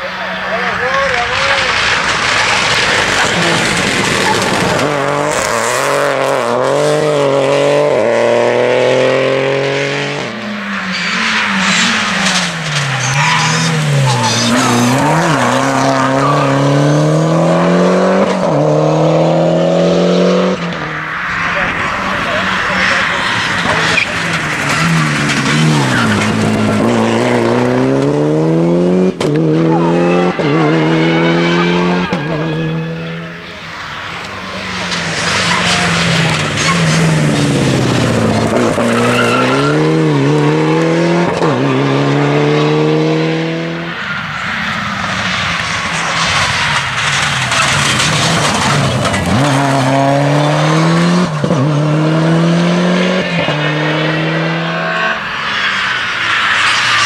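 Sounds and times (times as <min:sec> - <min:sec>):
rally car accelerating through gears: 0:00.0 - 0:57.0
second rally car accelerating: 0:00.0 - 0:57.0.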